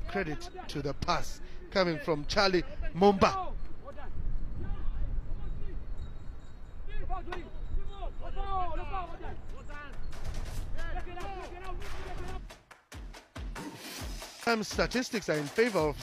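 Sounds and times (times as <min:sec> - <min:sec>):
music: 0:10.4 - 0:16.0.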